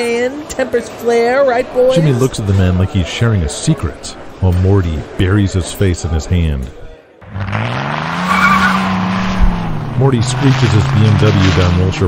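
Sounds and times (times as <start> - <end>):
car engine revving: 7.2 - 12.0
tires screeching: 7.2 - 12.0.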